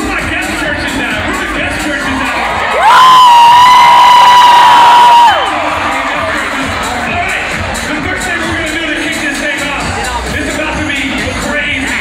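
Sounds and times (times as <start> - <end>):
crowd cheering and yelling: 0.1 - 10.2.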